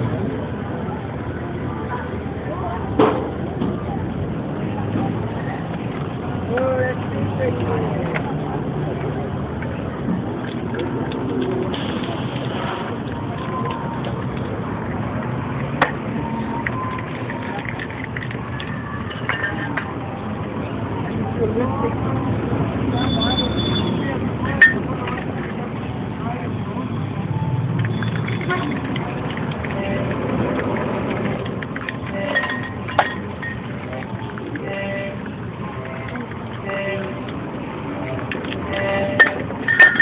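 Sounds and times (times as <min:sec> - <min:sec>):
traffic noise: 0:00.0 - 0:40.0
people talking: 0:00.2 - 0:27.4.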